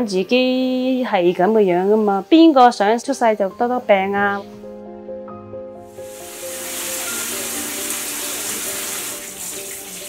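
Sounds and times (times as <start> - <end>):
soft background music: 0.0 - 10.0
tap water running into sink: 6.0 - 10.0.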